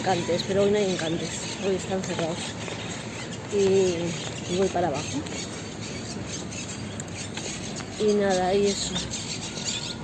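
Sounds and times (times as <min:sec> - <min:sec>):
outdoor street noise: 0:00.0 - 0:10.0.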